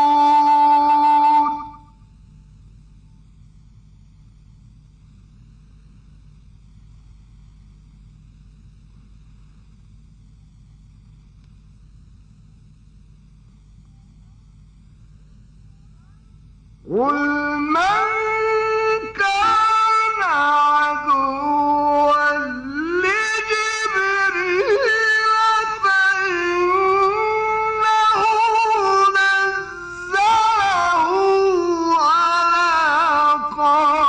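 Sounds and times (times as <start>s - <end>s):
man chanting a long note: 0.0s - 2.2s, 15.7s - 34.0s.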